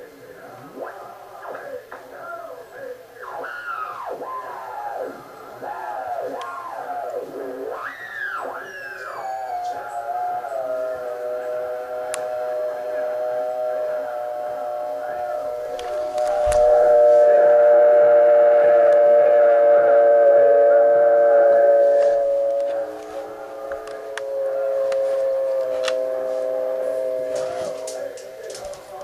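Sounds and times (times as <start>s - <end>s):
chanting voices over radio: 0.0s - 29.0s.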